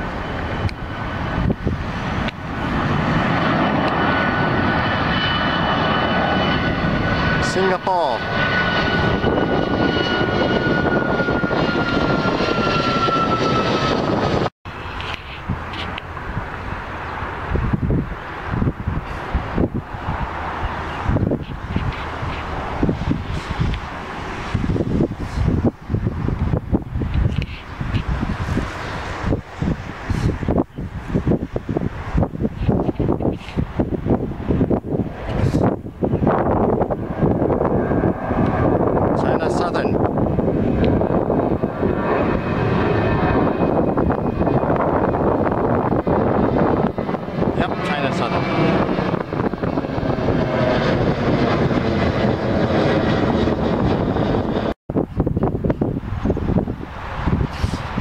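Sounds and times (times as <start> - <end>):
jet engines roaring overhead: 0.0 - 58.0
wind buffeting microphone: 0.0 - 58.0.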